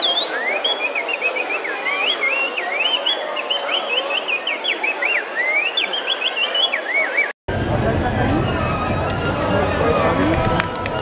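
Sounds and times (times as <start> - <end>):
shrill whistling chirps: 0.0 - 7.3
murmur of street crowd: 0.0 - 11.0.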